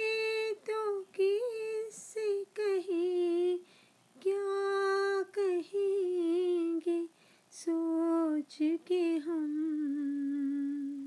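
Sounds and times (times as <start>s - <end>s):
solo voice singing: 4.2s - 11.0s.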